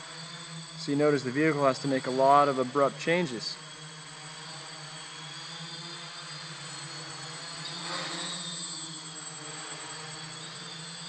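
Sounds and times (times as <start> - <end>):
quadcopter propellers buzzing: 0.0 - 11.0.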